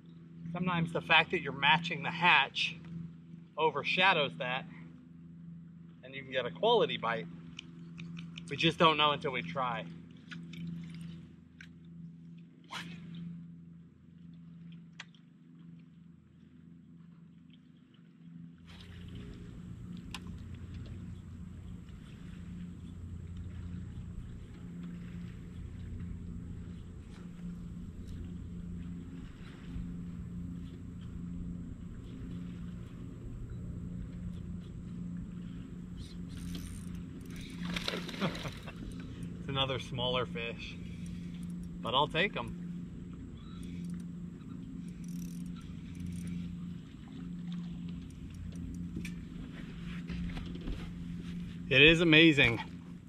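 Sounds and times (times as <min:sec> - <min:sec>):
electric trolling motor humming: 0:00.0 - 0:53.0.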